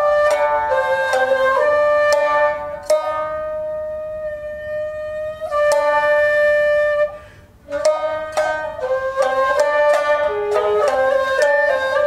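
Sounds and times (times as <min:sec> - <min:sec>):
flute long steady note: 0:00.0 - 0:12.0
shamisen plucks: 0:00.0 - 0:12.0.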